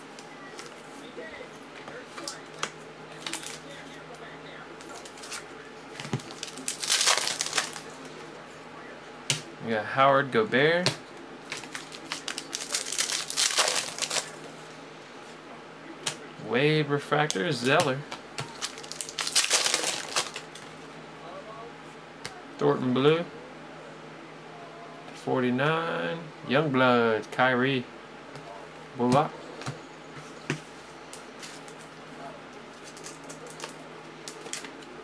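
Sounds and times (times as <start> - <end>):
foil wrapper crinkling: 3.2 - 3.6, 4.8 - 8.0, 11.5 - 14.4, 18.5 - 20.6, 32.8 - 34.6.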